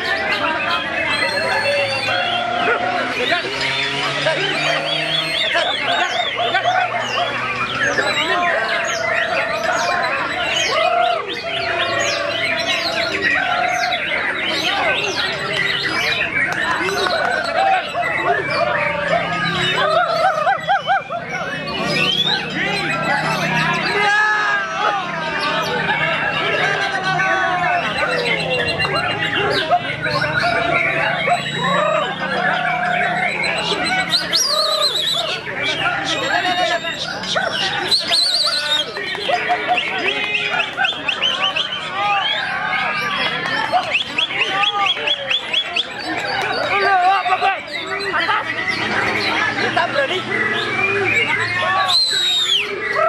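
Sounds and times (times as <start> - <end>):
chorus of songbirds: 0.0 - 53.0
loud high whistle and trill: 50.8 - 52.8.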